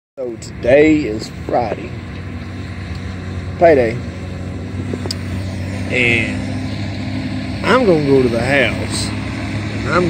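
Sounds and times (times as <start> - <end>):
work machine engine droning: 0.2 - 10.0.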